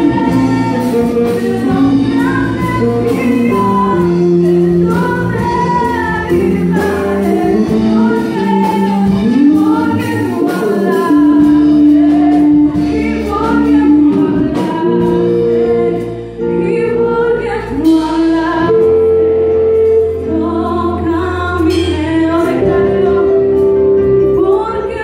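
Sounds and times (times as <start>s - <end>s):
live band playing: 0.0s - 25.0s
woman singing into microphone: 0.0s - 25.0s.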